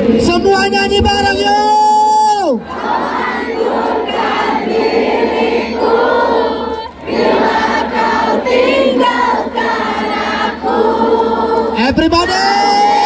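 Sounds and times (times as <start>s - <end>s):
crowd singing pop-rock song: 2.6s - 12.0s.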